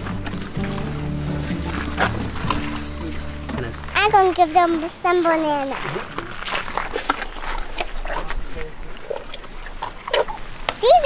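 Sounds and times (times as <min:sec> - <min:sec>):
elephants snuffling and grunting: 0:00.0 - 0:11.0.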